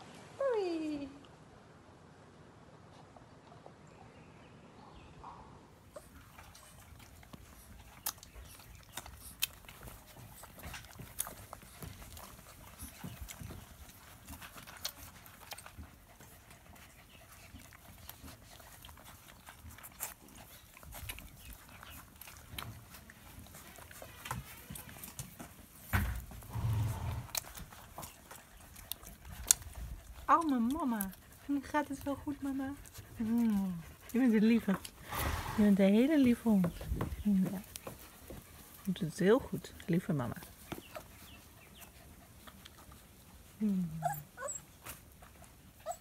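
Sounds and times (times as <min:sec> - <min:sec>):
puppies suckling wet smacking: 0:05.9 - 0:26.5, 0:27.3 - 0:35.1, 0:35.8 - 0:46.0.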